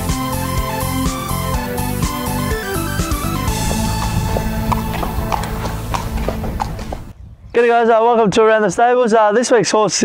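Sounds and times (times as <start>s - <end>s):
background music: 0.0s - 7.1s
horse hooves clip-clopping: 0.0s - 7.2s.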